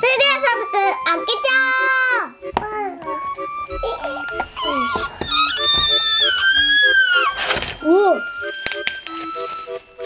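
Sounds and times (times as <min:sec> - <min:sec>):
background music: 0:00.0 - 0:10.0
toddler whining cry: 0:03.4 - 0:08.3.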